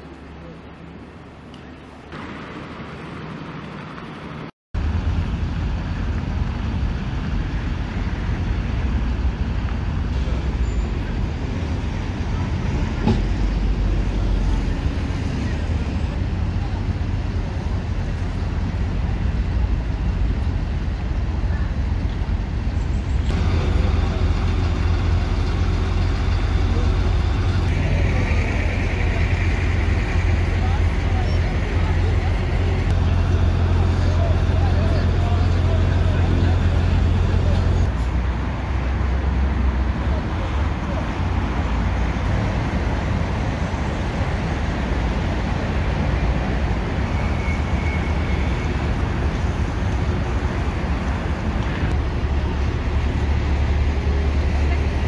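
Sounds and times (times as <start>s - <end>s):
fire engine drone: 4.8s - 55.0s.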